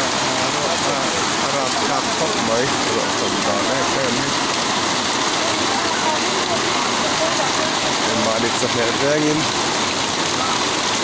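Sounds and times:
floodwater rushing: 0:00.0 - 0:11.0
heavy rain pouring: 0:00.0 - 0:11.0.

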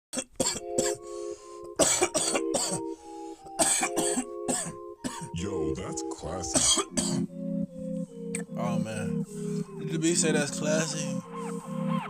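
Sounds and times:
man coughing: 0:00.2 - 0:01.0, 0:01.8 - 0:02.9, 0:03.6 - 0:05.4, 0:06.5 - 0:07.3.

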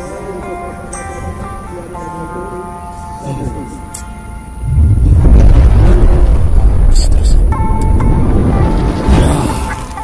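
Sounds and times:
music: 0:00.0 - 0:10.0
sustained musical tones: 0:00.0 - 0:10.0
deep rumbling whoosh: 0:04.6 - 0:09.3.

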